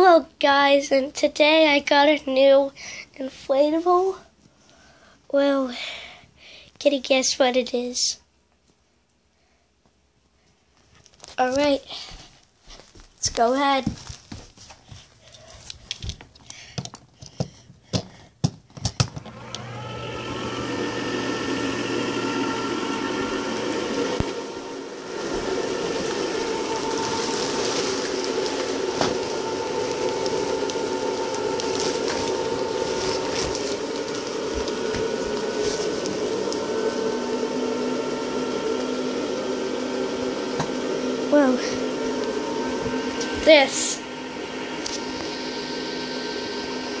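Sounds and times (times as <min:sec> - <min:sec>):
electric inflation blower running: 0:19.0 - 0:47.0.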